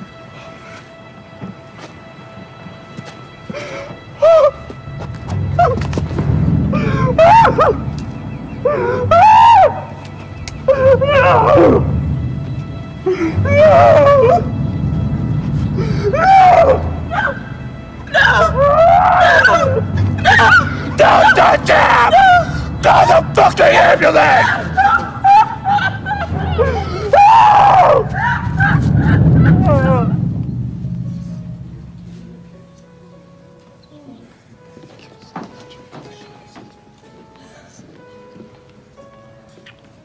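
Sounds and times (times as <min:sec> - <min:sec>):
low background music: 0:00.0 - 0:40.0
people screaming: 0:06.7 - 0:08.0, 0:08.6 - 0:10.1, 0:10.7 - 0:12.0, 0:13.0 - 0:14.5, 0:15.8 - 0:30.4
low steady rumble: 0:11.5 - 0:18.9, 0:25.0 - 0:33.5
man wailing: 0:13.1 - 0:14.5, 0:18.1 - 0:30.2.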